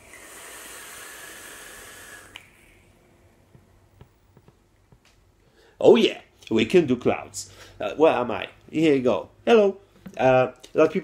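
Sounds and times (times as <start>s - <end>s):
vape hissing: 0.0s - 3.0s.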